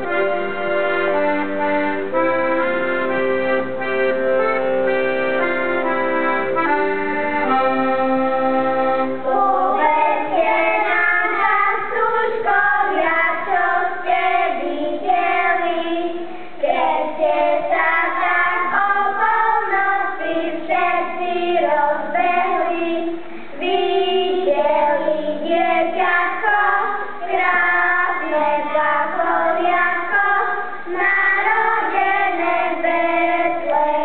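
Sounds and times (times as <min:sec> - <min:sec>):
children singing together: 0:00.0 - 0:34.0.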